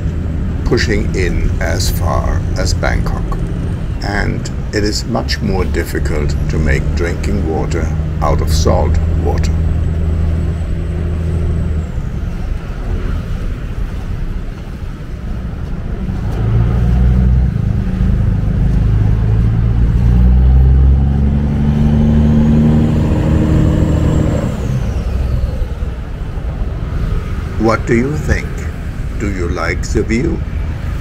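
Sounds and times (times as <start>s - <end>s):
traffic rumble: 0.0s - 31.0s
vehicle engine passing: 0.0s - 31.0s.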